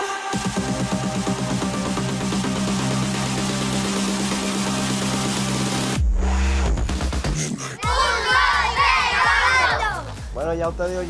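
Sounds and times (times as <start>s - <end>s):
music with steady beat: 0.0s - 11.0s
children shouting together: 7.8s - 10.0s.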